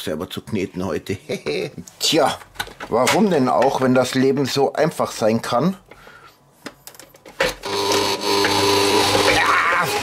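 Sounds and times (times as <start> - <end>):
mixer motor humming: 7.6 - 10.0.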